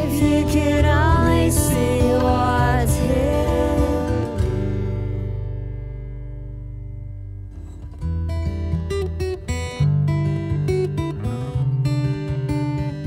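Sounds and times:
acoustic guitar playing: 0:00.0 - 0:13.0.

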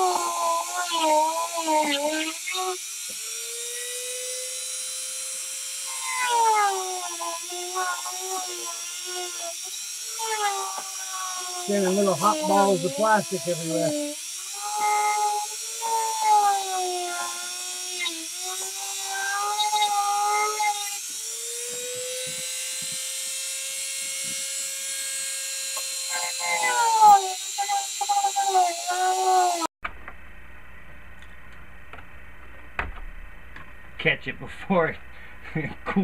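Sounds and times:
rotary tool whining cutting plastic: 0:00.0 - 0:29.7.

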